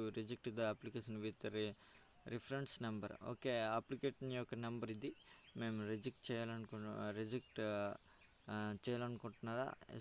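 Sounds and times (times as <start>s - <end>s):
man narrating: 0.0s - 10.0s.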